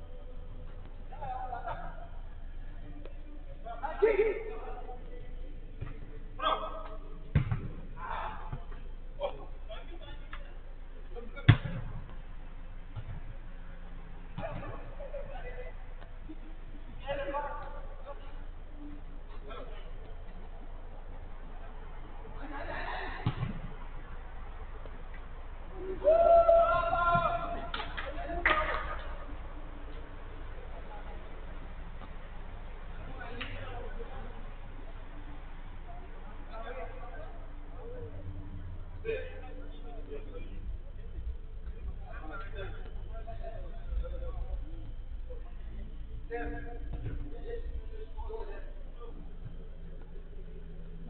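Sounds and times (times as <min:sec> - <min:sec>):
ball thumping on turf: 0:07.3 - 0:07.9
football kick thud: 0:07.3 - 0:07.9
players shouting: 0:25.7 - 0:29.4
person shouting: 0:25.8 - 0:27.6.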